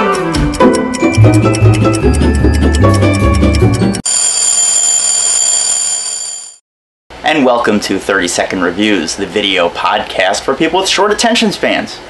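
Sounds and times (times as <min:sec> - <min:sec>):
intro music: 0:00.0 - 0:04.0
high-pitched alarm bell ringing: 0:01.0 - 0:06.6.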